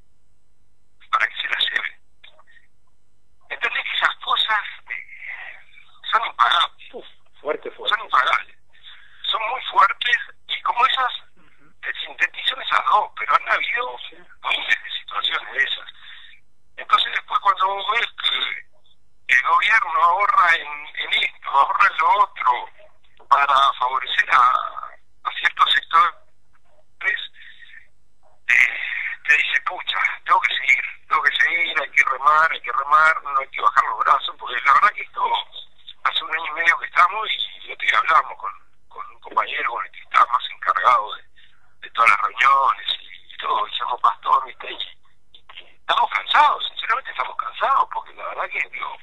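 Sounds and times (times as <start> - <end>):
voice over telephone line: 1.0 - 2.5, 3.5 - 18.7, 19.3 - 26.2, 27.0 - 27.8, 28.5 - 49.0.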